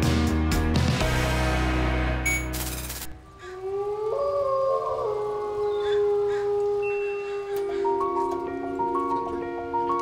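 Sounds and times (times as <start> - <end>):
wolves howling: 3.4 - 10.0.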